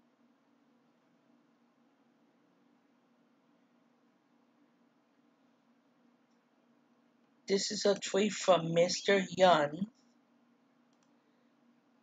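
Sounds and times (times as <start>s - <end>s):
faint room hum: 0.0s - 12.0s
computer mouse click: 10.9s - 11.2s.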